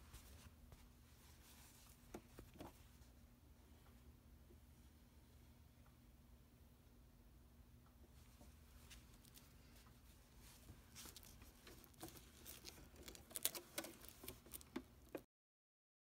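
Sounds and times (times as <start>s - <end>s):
fabric and velcro rustling: 8.8s - 15.2s.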